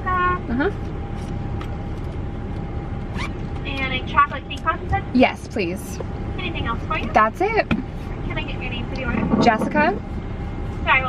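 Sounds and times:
car idling: 0.0s - 11.0s.

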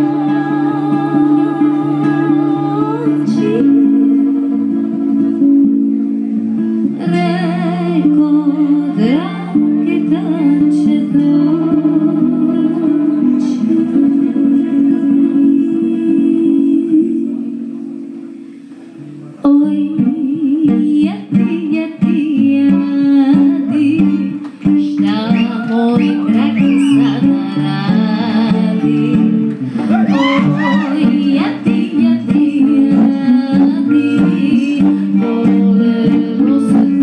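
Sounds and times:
woman singing: 0.0s - 5.7s, 6.8s - 17.7s, 19.4s - 37.0s
acoustic guitar: 0.0s - 37.0s
violin: 19.0s - 37.0s.

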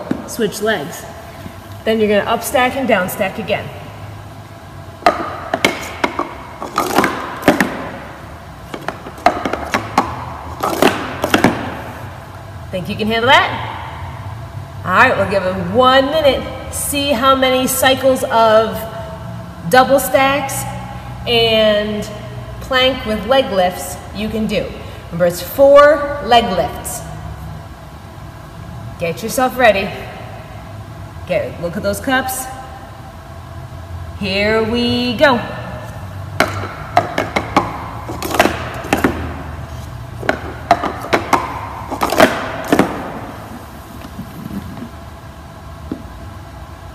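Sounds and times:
low hum with faint hiss: 0.0s - 46.9s.

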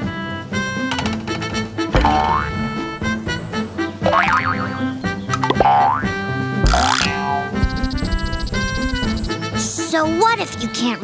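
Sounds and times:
cartoon background music: 0.0s - 11.0s
springy boing swoops: 1.9s - 2.8s, 4.0s - 4.8s, 5.4s - 7.8s.

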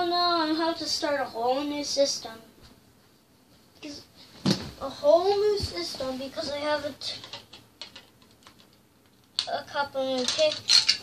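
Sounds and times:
plastic toy bricks clicking: 7.2s - 8.8s, 10.2s - 11.0s.

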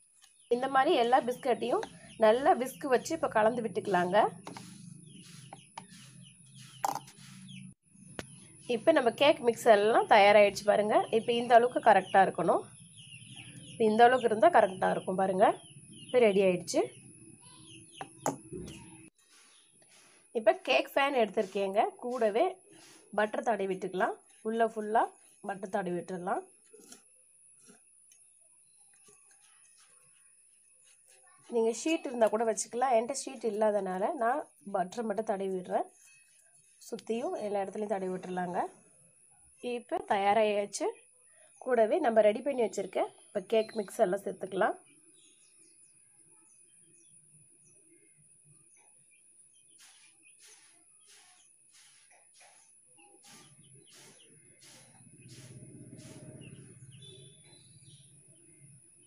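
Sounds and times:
small birds chirping: 0.0s - 8.9s, 9.7s - 38.8s, 42.7s - 59.0s
wire whisk stirring batter: 3.8s - 7.6s
person speaking: 20.4s - 22.5s.

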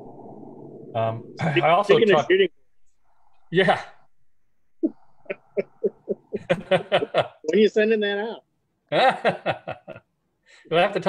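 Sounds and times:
man laughing over video call: 5.3s - 7.5s, 8.9s - 10.0s.

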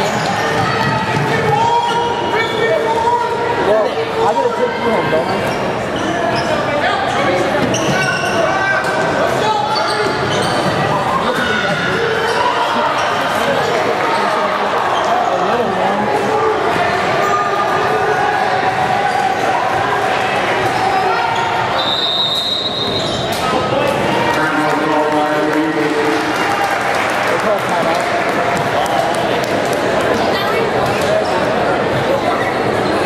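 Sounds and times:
echoing crowd chatter: 0.0s - 33.0s.

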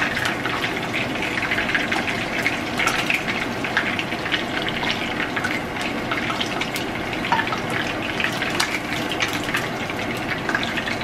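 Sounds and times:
fish sizzling in oil: 0.0s - 11.0s.

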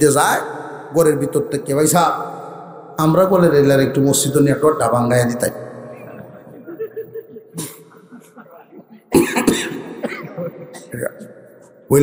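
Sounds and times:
man coughing hard: 7.6s - 8.3s, 9.0s - 11.3s.

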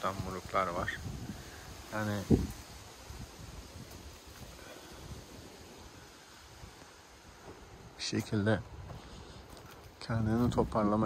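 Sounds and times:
leaves rustling: 0.0s - 11.0s
wind buffeting microphone: 0.0s - 11.0s.

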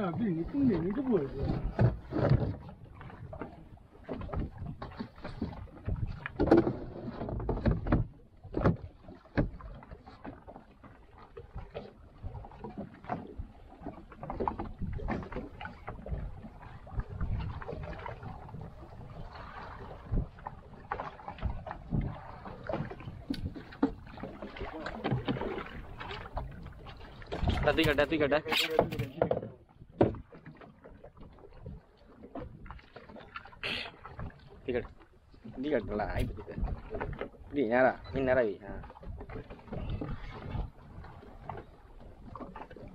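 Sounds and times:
water slapping against boat hull: 0.0s - 42.9s
wind on microphone: 14.6s - 29.1s, 38.7s - 41.6s.

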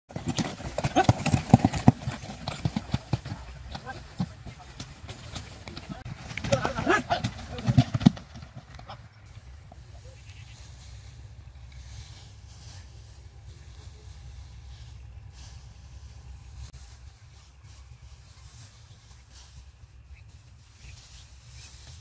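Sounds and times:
cart knocking and clattering: 0.1s - 9.0s
hooves clopping: 0.1s - 22.0s.

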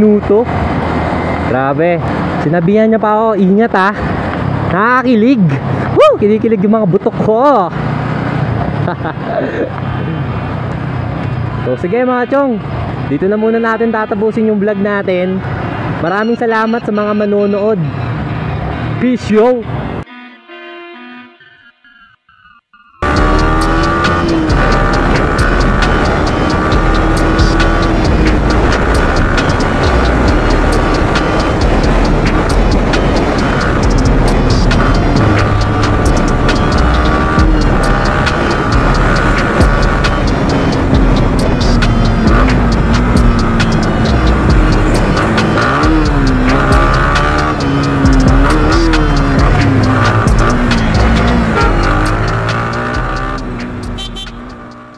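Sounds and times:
background music: 23.0s - 54.9s
motorcycle engine running: 23.0s - 54.9s.

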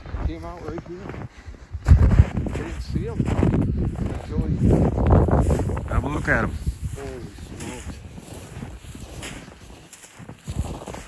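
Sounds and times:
footsteps crunching in snow: 0.0s - 11.0s
wind buffeting microphone: 0.0s - 11.0s
man speaking: 5.9s - 8.0s.

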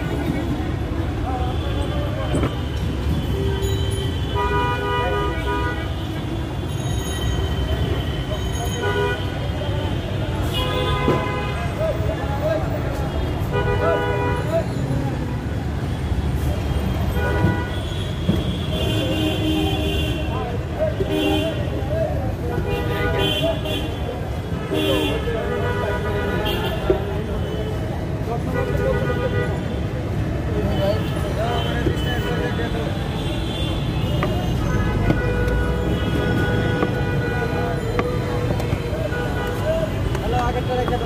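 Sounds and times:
traffic rumble: 0.0s - 41.0s
vehicle horns honking: 1.4s - 12.0s, 17.0s - 21.8s, 30.6s - 41.0s.

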